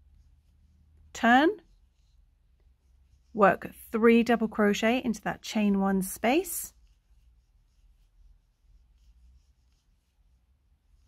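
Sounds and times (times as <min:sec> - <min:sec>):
crochet hook rustling yarn: 0:00.0 - 0:11.0.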